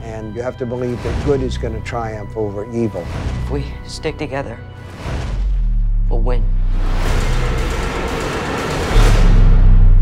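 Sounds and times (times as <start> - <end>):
low rumbling drone: 4.6 - 10.0.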